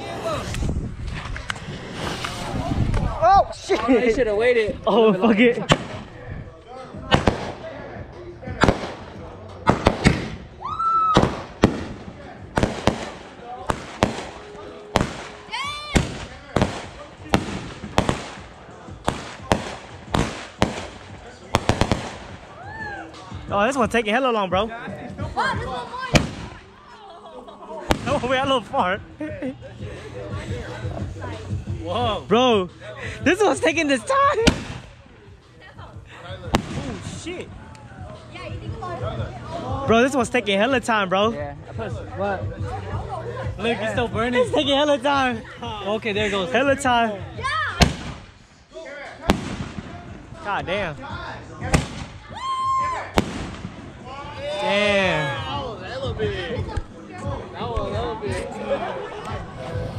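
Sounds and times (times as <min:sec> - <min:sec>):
firework bang: 0:00.4 - 0:03.2, 0:05.7 - 0:06.2, 0:07.1 - 0:07.6, 0:08.6 - 0:10.5, 0:11.1 - 0:22.5, 0:26.1 - 0:26.7, 0:27.9 - 0:28.3, 0:34.4 - 0:35.0, 0:36.5 - 0:37.2, 0:47.8 - 0:48.4, 0:49.2 - 0:50.0, 0:51.7 - 0:52.2, 0:53.1 - 0:54.0.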